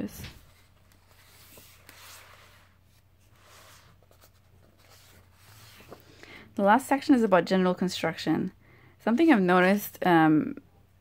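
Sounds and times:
book pages flipping: 0:00.2 - 0:06.2.

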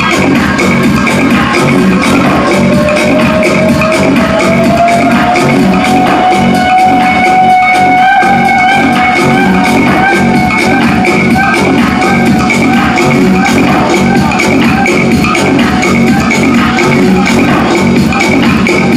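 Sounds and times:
loud dance music: 0:00.0 - 0:18.9.

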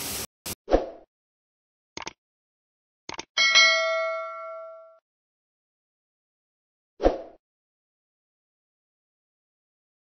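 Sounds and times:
sound-effect clicks: 0:02.0 - 0:02.2, 0:03.1 - 0:03.3
bright bell ding: 0:03.4 - 0:05.0.

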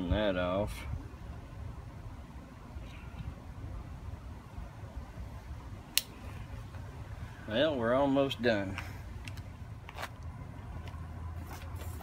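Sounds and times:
sharp click: 0:05.9 - 0:06.2
road-paving machinery rumbling: 0:06.2 - 0:12.0.

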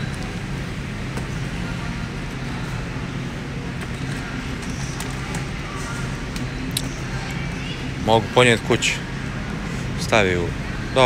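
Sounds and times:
low machinery hum: 0:00.0 - 0:11.0.

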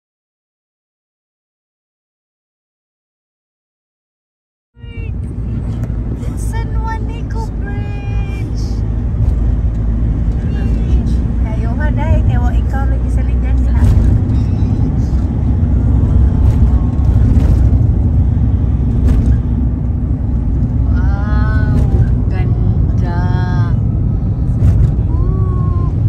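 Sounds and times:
voices: 0:04.8 - 0:08.9, 0:10.3 - 0:15.3, 0:20.8 - 0:26.0
vehicle engine and tyres rumbling: 0:04.8 - 0:26.0.

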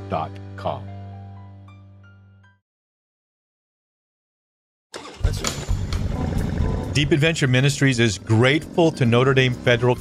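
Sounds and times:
motorcycle engine starting: 0:05.0 - 0:10.0.

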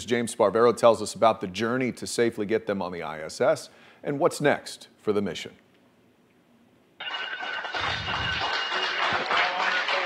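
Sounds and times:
bell ringing: 0:07.0 - 0:10.0.

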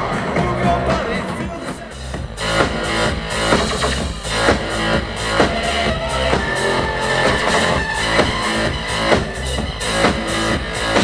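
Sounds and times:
electronic rock band playing: 0:00.0 - 0:11.0.

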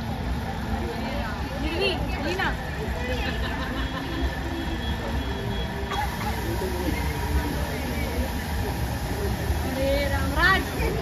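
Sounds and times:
chatter of children and adults: 0:00.8 - 0:11.0.

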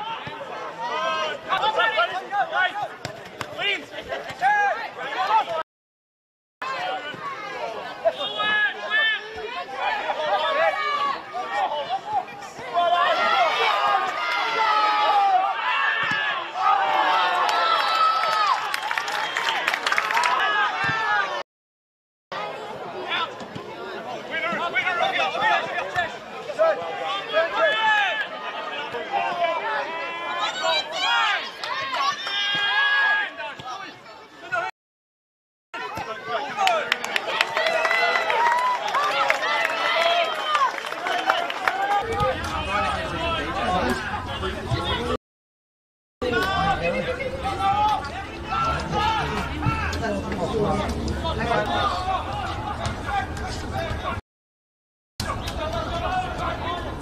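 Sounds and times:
footballers shouting: 0:00.0 - 0:05.6, 0:06.6 - 0:21.4, 0:22.4 - 0:34.7, 0:35.8 - 0:45.2, 0:46.2 - 0:54.2, 0:55.2 - 0:57.0.

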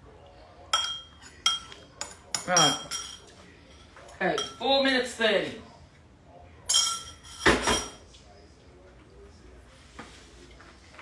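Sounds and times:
kitchenware clattering: 0:00.7 - 0:04.9, 0:06.6 - 0:08.1.

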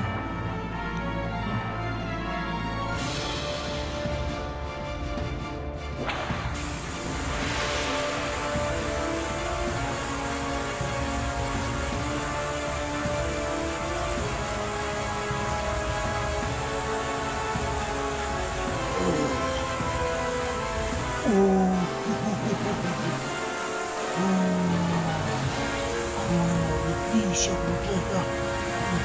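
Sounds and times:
background music of sustained tones: 0:00.0 - 0:29.0
stream water rushing: 0:00.6 - 0:29.0.

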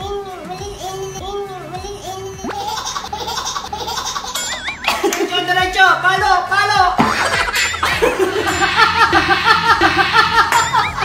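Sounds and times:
warbling tone: 0:00.8 - 0:05.3
people laughing hard: 0:07.0 - 0:11.0.

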